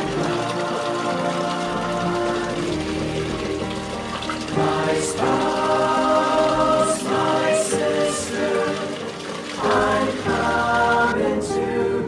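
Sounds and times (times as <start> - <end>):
choir singing a hymn: 0.0 - 3.2, 4.5 - 12.0.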